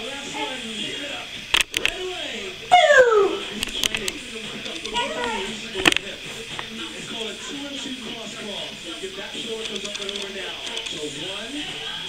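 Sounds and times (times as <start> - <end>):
faint background music: 0.0 - 12.0
sharp clicks: 3.6 - 5.0, 9.6 - 11.0.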